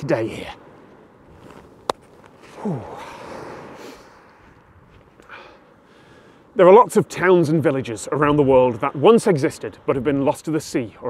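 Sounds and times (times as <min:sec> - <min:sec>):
man sighing: 0:02.4 - 0:04.3, 0:05.2 - 0:06.4.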